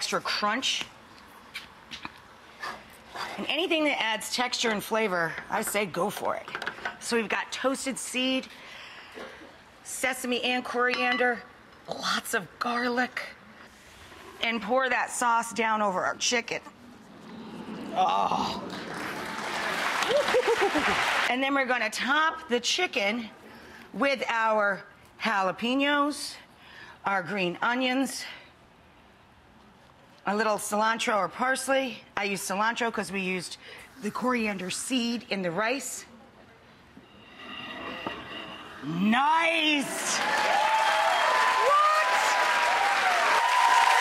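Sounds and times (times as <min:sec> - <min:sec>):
audience applauding: 0:18.7 - 0:21.3, 0:39.9 - 0:44.0.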